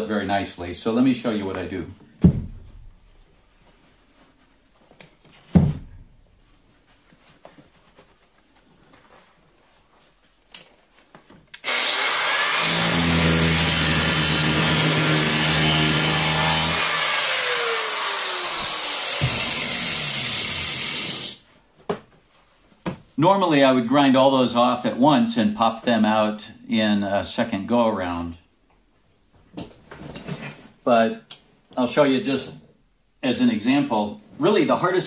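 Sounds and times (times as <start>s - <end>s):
thump: 2.2s - 3.0s, 5.5s - 6.1s, 19.2s - 19.6s
angle grinder grinding metal: 11.6s - 21.4s.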